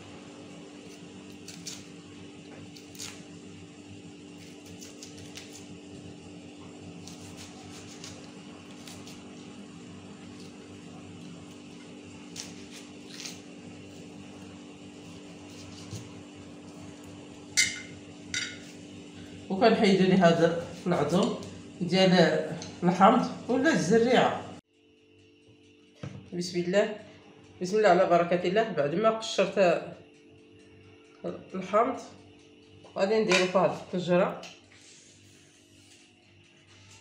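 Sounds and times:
steady low hum: 0.0s - 37.0s
peeling lemons by hand: 0.8s - 3.4s, 4.2s - 17.2s.

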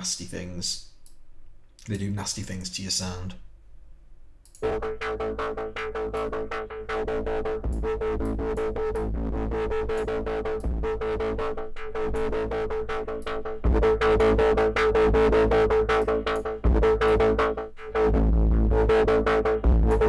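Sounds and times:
distorted drum loop: 4.6s - 20.0s.

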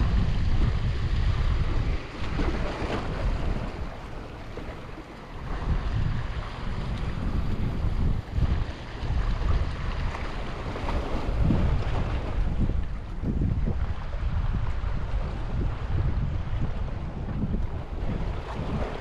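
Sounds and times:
waves splashing against rocks: 0.0s - 19.0s
wind buffeting microphone: 0.0s - 19.0s.

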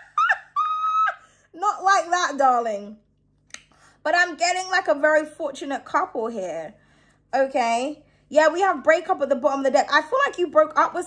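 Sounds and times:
woman laughing in high squeals: 0.0s - 1.3s.

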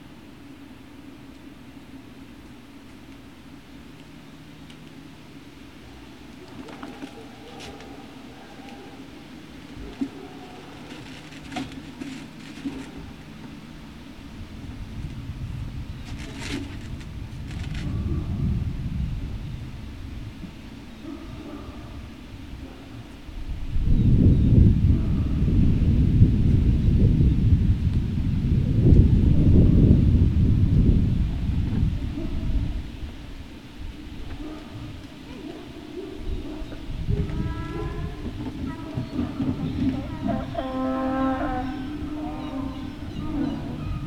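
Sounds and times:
wind buffeting microphone: 5.7s - 44.0s.

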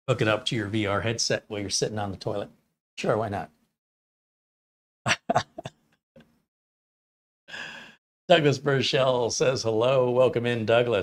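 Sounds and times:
man chuckling: 5.1s - 5.8s.

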